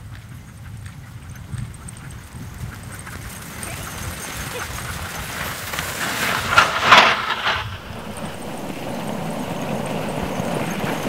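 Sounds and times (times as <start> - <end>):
sled runners and paws on snow: 0.0 - 11.0.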